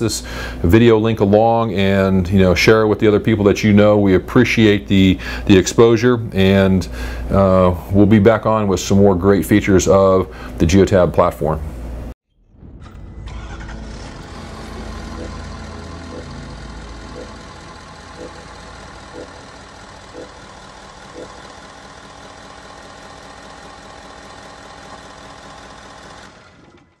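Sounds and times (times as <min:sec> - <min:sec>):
vehicle engine starting and idling: 0:12.8 - 0:27.0
short tones: 0:14.3 - 0:21.4.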